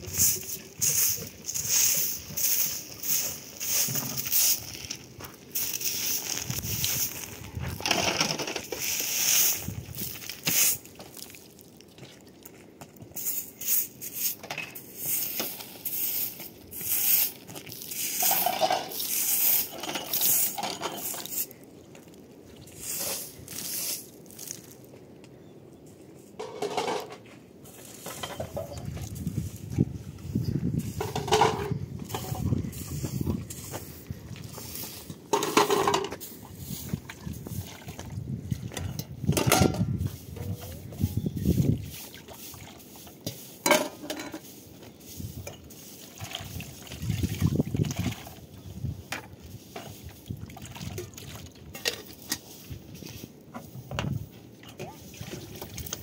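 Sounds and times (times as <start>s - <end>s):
broom sweeping concrete: 0.0s - 11.7s, 13.0s - 24.9s, 27.6s - 38.4s, 39.2s - 50.4s, 51.7s - 56.0s
dishes clinking: 18.2s - 18.9s
water splashing in a basin: 46.2s - 48.4s, 50.3s - 51.6s.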